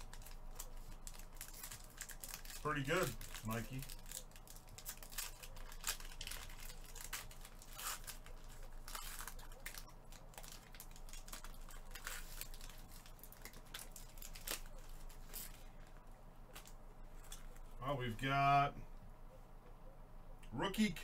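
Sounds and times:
foil wrapper crinkling and tearing: 0.0s - 17.8s
faint low hum: 0.0s - 21.0s.

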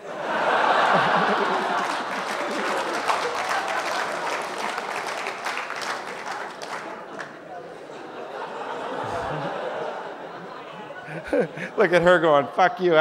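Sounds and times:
audience laughing: 0.0s - 13.0s
audience applauding: 0.2s - 7.6s.

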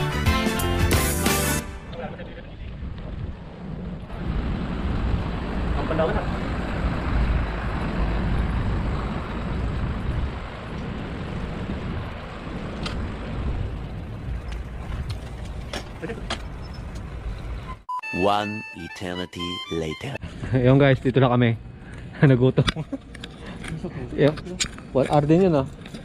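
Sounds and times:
bicycle road noise: 1.4s - 17.8s, 20.2s - 26.0s
rushing wind: 1.8s - 17.7s.

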